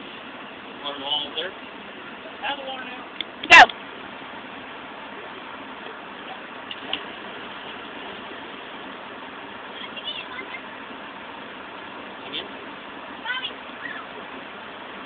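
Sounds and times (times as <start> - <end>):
outdoor noise haze: 0.0 - 15.0
distant girls shouting: 13.2 - 14.2.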